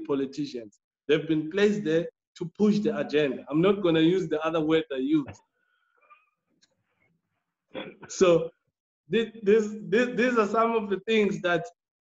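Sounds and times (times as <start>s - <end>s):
man speaking: 0.0s - 5.4s, 7.8s - 8.5s, 9.1s - 11.8s.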